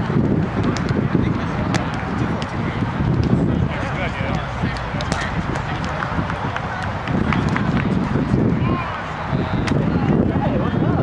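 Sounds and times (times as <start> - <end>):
wind buffeting microphone: 0.0 - 11.0
ball hitting net: 1.7 - 2.6, 4.3 - 6.1
hands slapping ball: 4.3 - 7.9.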